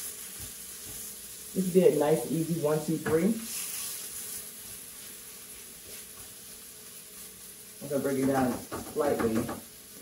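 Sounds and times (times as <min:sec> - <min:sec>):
meat sizzling in a skillet: 0:00.0 - 0:10.0.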